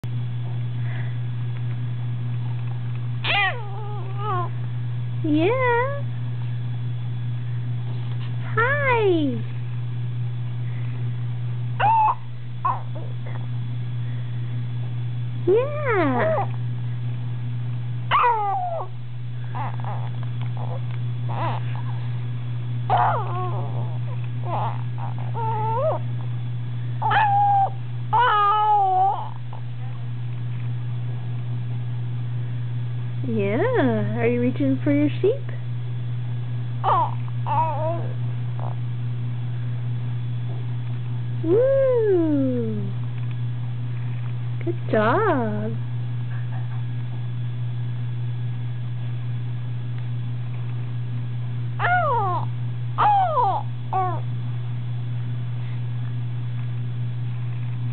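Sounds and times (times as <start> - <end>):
low hum: 0.0 - 57.9
baby cooing and squealing: 19.6 - 21.6, 22.9 - 26.0, 27.0 - 29.3, 36.8 - 38.2, 51.8 - 54.2
baby squealing: 19.6 - 21.6, 36.8 - 38.1, 51.8 - 52.4, 53.0 - 54.2.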